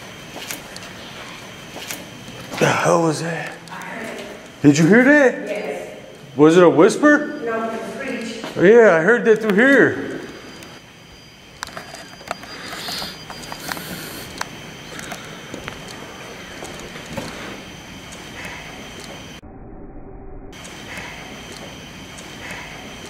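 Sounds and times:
faint high whine: 0:00.0 - 0:23.0
steady hiss: 0:09.6 - 0:19.4.

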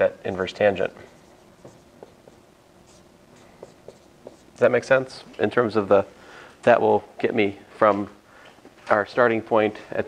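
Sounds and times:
marker squeaking on whiteboard: 0:00.4 - 0:04.6.

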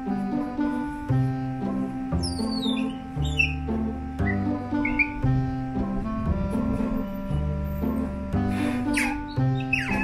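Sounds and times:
background music: 0:00.0 - 0:10.0
otter squeaking: 0:02.2 - 0:05.4, 0:08.6 - 0:10.0.

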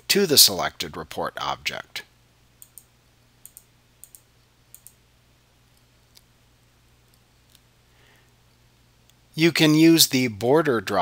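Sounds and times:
computer mouse clicks: 0:02.6 - 0:05.0.

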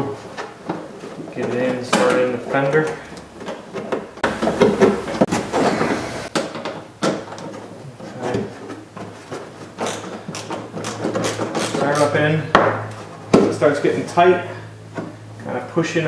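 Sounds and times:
hand tool clicks and scrapes on plastic: 0:09.8 - 0:12.2.

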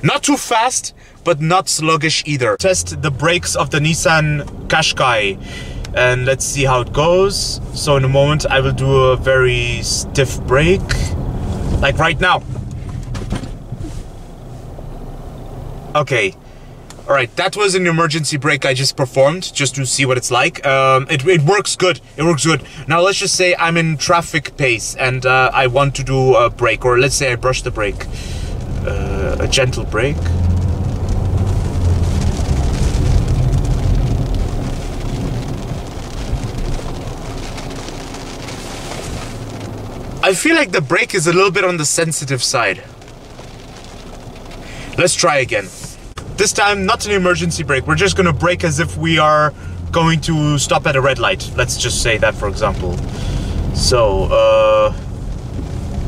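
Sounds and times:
road and engine rumble: 0:00.0 - 0:56.0.

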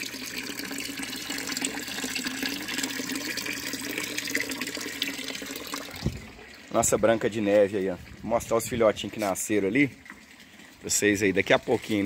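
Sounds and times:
pond water trickling: 0:00.0 - 0:12.0.

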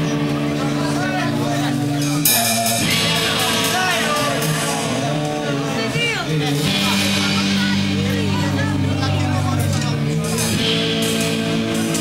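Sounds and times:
amplified guitar and bass: 0:00.0 - 0:12.0.

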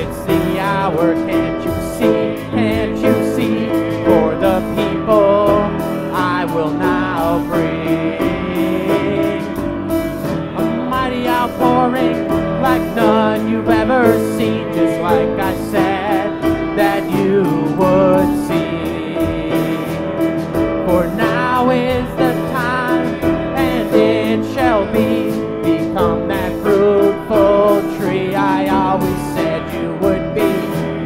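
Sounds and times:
person singing: 0:00.0 - 0:31.0
upright piano: 0:00.0 - 0:31.0.

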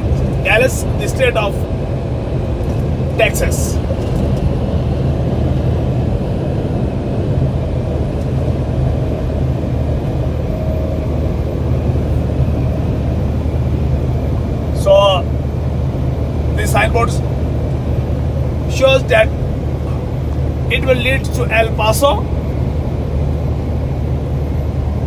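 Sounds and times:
road and engine rumble in car: 0:00.0 - 0:25.0
person speaking: 0:00.4 - 0:01.6, 0:03.2 - 0:03.8.

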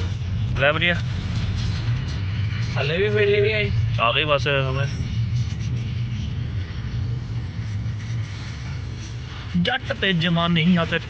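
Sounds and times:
car engine and tyre drone: 0:00.0 - 0:11.0.

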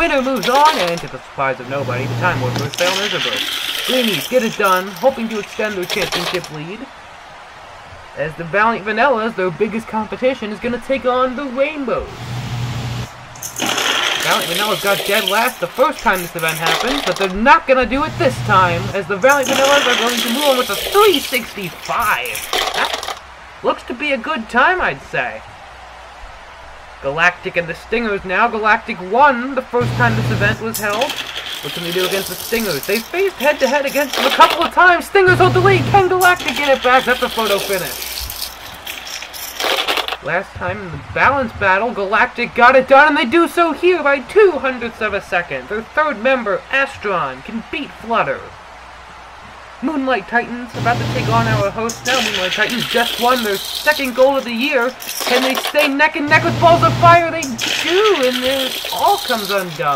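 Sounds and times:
marbles clattering on plastic track: 0:00.0 - 0:01.2, 0:02.5 - 0:06.6, 0:13.4 - 0:17.5, 0:19.0 - 0:23.2, 0:30.6 - 0:34.8, 0:36.0 - 0:40.2, 0:51.8 - 0:56.1, 0:57.3 - 0:59.9
marbles rolling on steel rails: 0:00.0 - 0:01.2, 0:02.5 - 0:06.6, 0:13.4 - 0:17.5, 0:19.0 - 0:23.2, 0:30.6 - 0:40.2, 0:51.6 - 0:56.1, 0:57.3 - 0:59.9.

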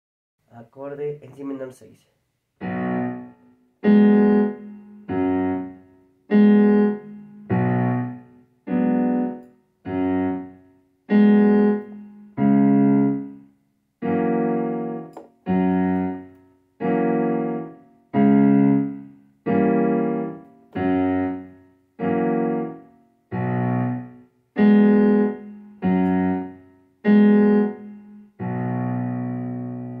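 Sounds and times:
piano chord struck: 0:14.0 - 0:30.0.

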